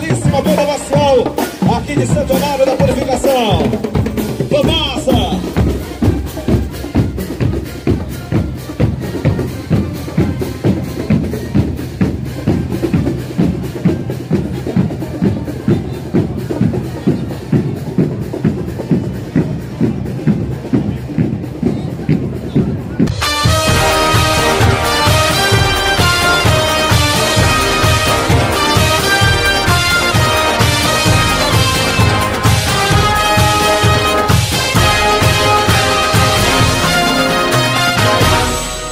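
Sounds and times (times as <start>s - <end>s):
marching drum line: 0.0s - 38.9s
synthesized music with held notes: 23.1s - 38.9s.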